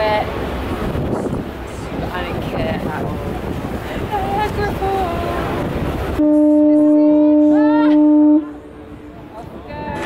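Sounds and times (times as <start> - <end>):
wind on microphone: 0.7 - 10.0
boat horn blast: 6.1 - 9.3.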